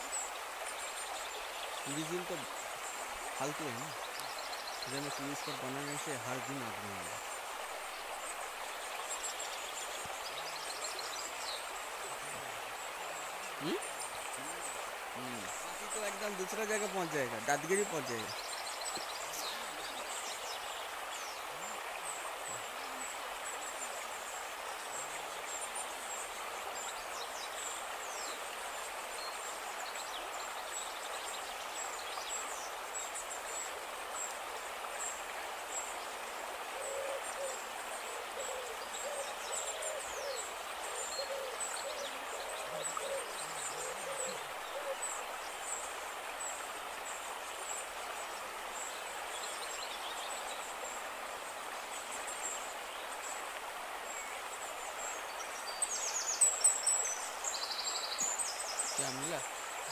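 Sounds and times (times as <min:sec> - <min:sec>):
flowing stream water: 0:00.0 - 0:59.9
bird hooting calls: 0:36.7 - 0:45.2.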